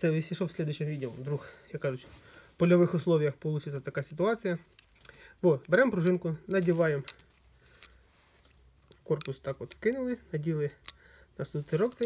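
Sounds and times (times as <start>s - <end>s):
faint plastic clicks: 4.6s - 11.1s.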